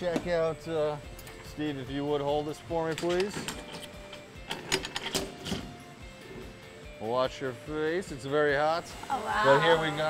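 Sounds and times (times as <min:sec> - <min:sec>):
metal clamp knobs clicking: 0:02.8 - 0:05.7.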